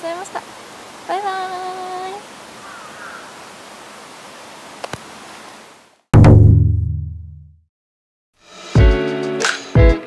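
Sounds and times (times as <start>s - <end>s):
outdoor background hiss: 0.0s - 6.1s.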